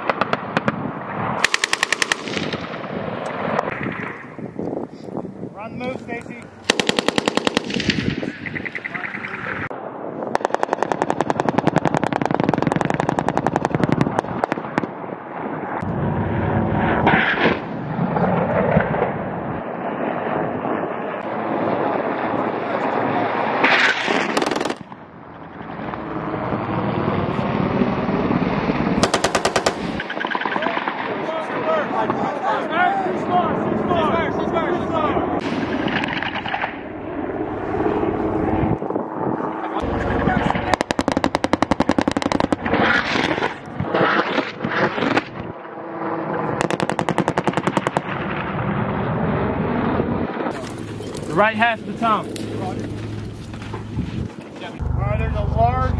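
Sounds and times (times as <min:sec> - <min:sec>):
machine-gun fire in rapid bursts: 0:00.0 - 0:04.2, 0:06.6 - 0:09.4, 0:10.3 - 0:15.0, 0:23.6 - 0:24.9, 0:29.0 - 0:31.3, 0:35.4 - 0:36.8, 0:39.8 - 0:45.4, 0:46.6 - 0:49.0
steady rushing noise: 0:00.0 - 0:55.9.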